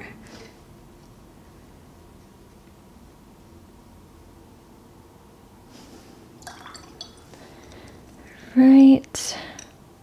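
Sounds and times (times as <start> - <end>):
brush clinking against glass: 6.4 - 7.7.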